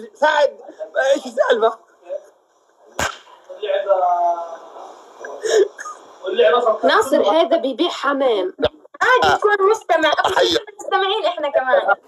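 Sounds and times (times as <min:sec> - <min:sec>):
hand slap: 0:03.0 - 0:03.4.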